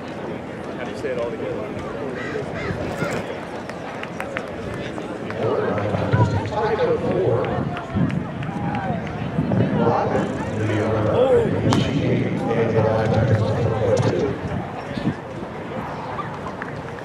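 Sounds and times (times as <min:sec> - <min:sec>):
indistinct chatter: 0:00.0 - 0:17.0.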